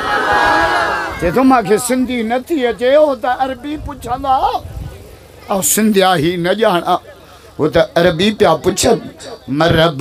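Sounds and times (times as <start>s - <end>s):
man preaching over loudspeaker: 7.6s - 10.0s.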